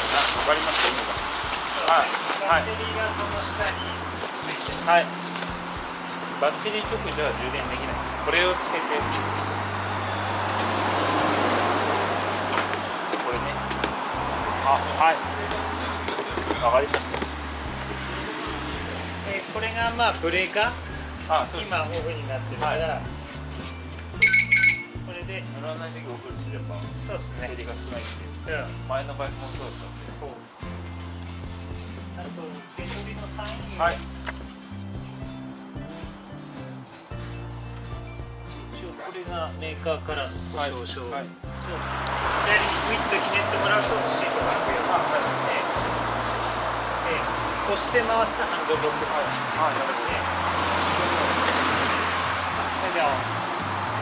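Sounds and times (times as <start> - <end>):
music: 0.0 - 54.0
street noise: 0.0 - 54.0
short high electronic beeps: 24.2 - 25.0
background voices: 41.5 - 54.0.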